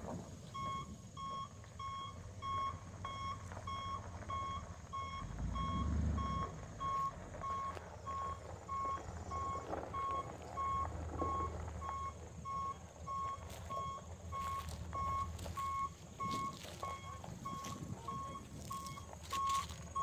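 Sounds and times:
truck engine running: 0.0 - 20.0
truck backup alarm beeping: 0.3 - 20.0.

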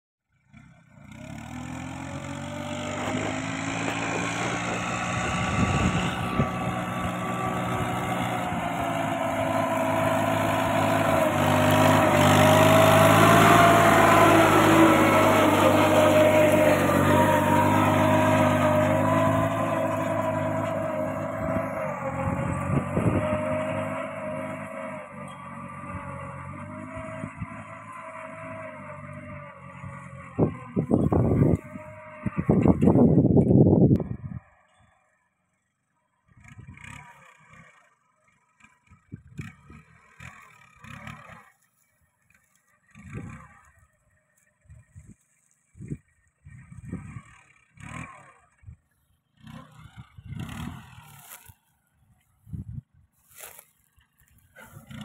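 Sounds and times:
tractor diesel engine running: 0.3 - 55.0.

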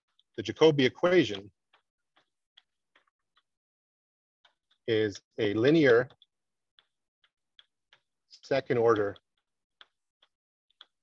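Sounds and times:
person speaking: 0.4 - 1.5, 4.8 - 6.3, 8.3 - 9.2
chalk clicking on a blackboard: 4.5 - 11.0.

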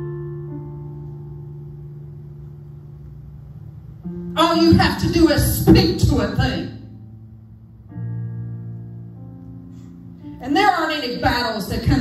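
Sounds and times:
keyboard holding low chord: 0.0 - 10.6.

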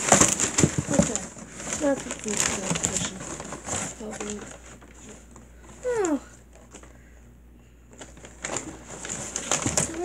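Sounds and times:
cardboard box rustling and scraping: 0.0 - 5.2, 8.4 - 10.0.

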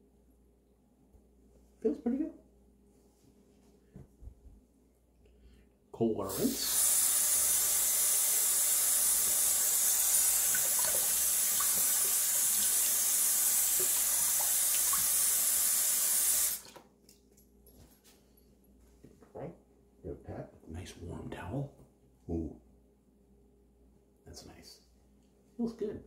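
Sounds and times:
tap running water: 6.3 - 16.9.

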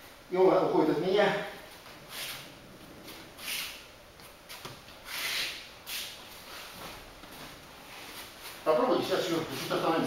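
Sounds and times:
bare feet sliding on mats: 1.7 - 9.9.

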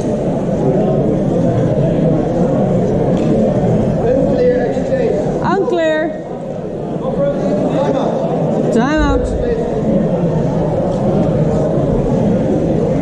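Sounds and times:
echoing overlapping chatter: 0.0 - 13.0.

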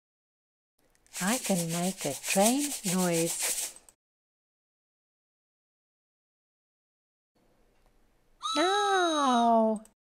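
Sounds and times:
person calling out: 8.4 - 9.7.

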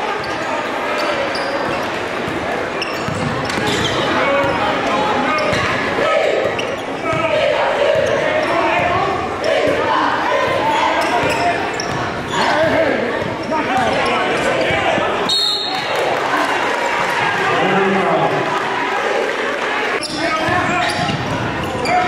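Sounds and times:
crowd voices and shouts: 0.0 - 22.0.

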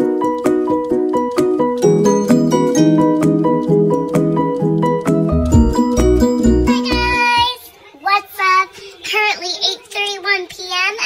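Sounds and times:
high-pitched sing-song voice: 6.5 - 7.6.

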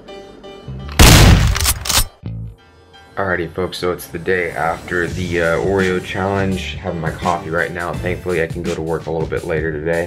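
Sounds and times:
gunfire cracks: 1.0 - 2.1.

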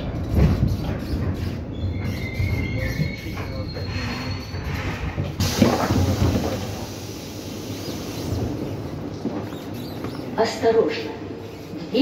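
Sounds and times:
wheels and brakes squealing: 0.0 - 5.4, 7.8 - 10.4, 11.4 - 12.0
train rumbling to a stop: 0.0 - 12.0
sliding doors clattering open: 4.7 - 6.9
hiss of air: 5.4 - 8.6.

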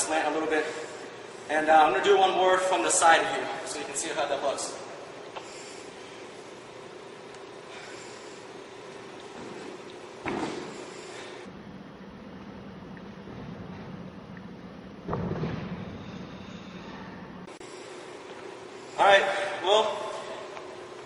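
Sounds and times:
low room hum: 0.0 - 21.0.

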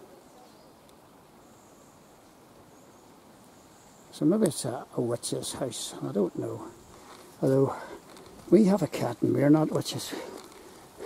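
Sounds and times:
low steady background hiss: 0.0 - 11.0.

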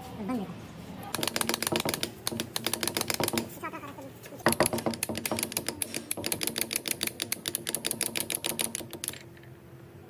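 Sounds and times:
rapid metallic clicking of gears: 1.1 - 3.5, 4.5 - 9.5.

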